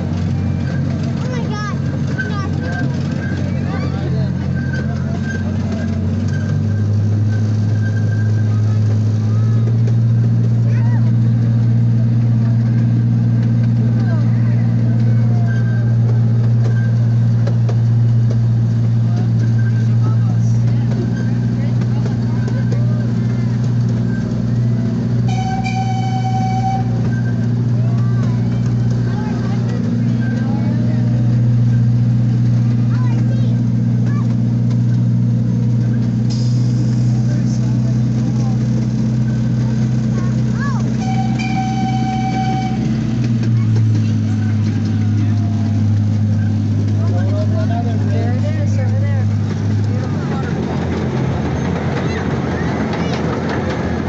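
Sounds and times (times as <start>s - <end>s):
miniature train engine drone: 0.0s - 54.0s
train whistle toot: 25.3s - 27.2s, 41.0s - 43.2s.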